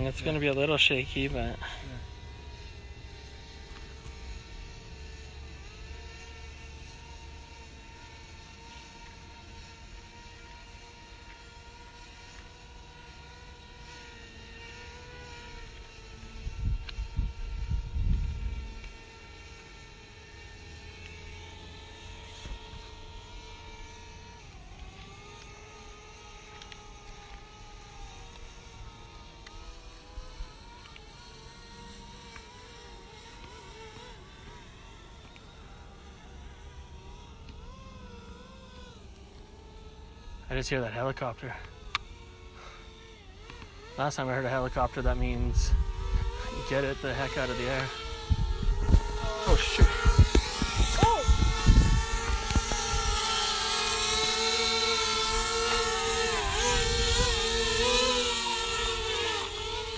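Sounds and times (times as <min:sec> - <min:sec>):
drone propellers buzzing: 0:00.0 - 0:59.9.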